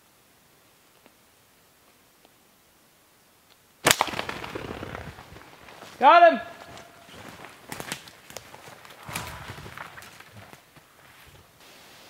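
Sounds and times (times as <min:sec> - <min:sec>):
twigs snapping: 0:03.8 - 0:06.0, 0:06.6 - 0:10.8
boots rustling through brush: 0:03.9 - 0:11.6
footsteps through undergrowth: 0:03.9 - 0:11.6.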